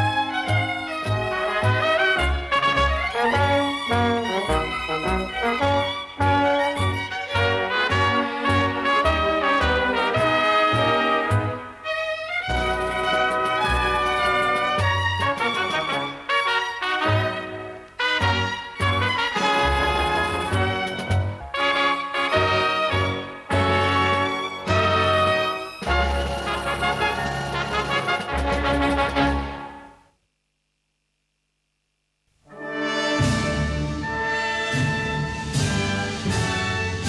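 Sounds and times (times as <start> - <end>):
brass and orchestra anthem: 0.0 - 30.1, 32.5 - 37.0.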